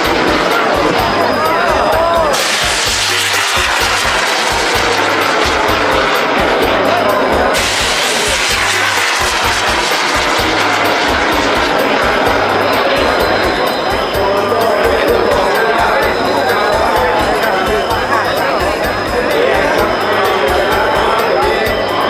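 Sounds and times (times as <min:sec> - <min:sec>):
rocket rushing roar: 0:00.0 - 0:14.2
crowd voices: 0:00.0 - 0:22.0
festival music with bass beat: 0:00.0 - 0:22.0.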